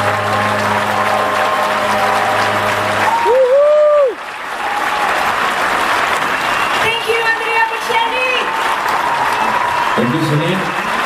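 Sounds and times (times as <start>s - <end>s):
audience applauding and cheering: 0.0s - 11.0s
fan shouting woo: 3.0s - 5.0s.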